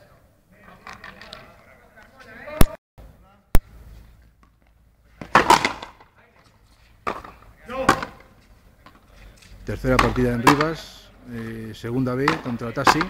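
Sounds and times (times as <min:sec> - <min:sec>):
ball struck with sharp crack: 0:05.2 - 0:06.0, 0:10.0 - 0:10.9.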